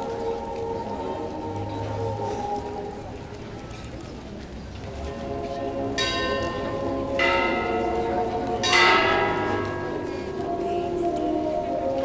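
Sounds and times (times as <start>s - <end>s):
large bell ringing: 6.0s - 12.0s.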